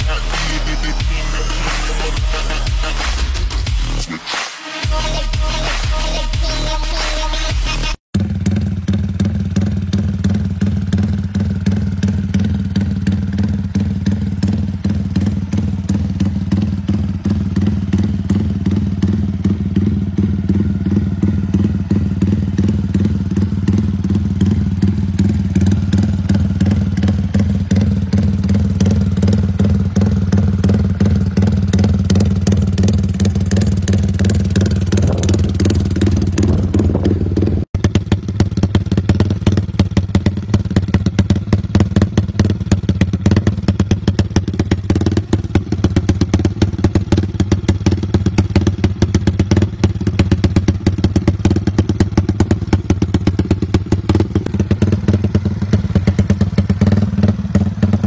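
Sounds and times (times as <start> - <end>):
engine running with fast pulsing: 0.0 - 4.1, 4.8 - 58.0.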